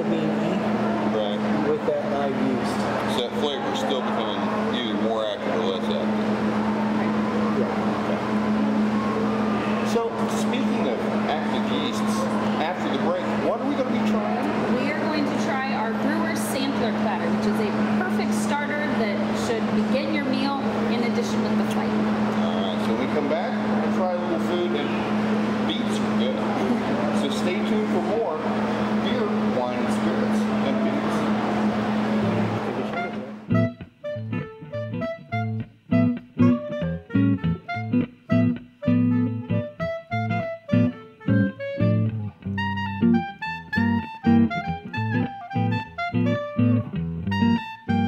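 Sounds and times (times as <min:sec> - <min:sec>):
man talking: 0:01.1 - 0:06.1, 0:09.8 - 0:14.5, 0:22.4 - 0:25.0, 0:25.6 - 0:31.3.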